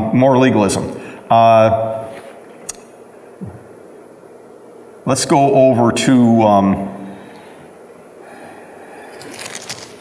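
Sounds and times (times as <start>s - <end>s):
thin pages being turned: 9.2s - 10.0s.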